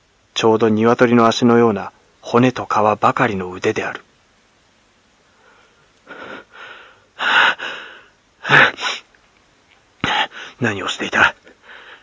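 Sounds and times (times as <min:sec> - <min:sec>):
man gasping breaths: 0:05.3 - 0:09.1, 0:10.0 - 0:10.6, 0:11.5 - 0:12.0.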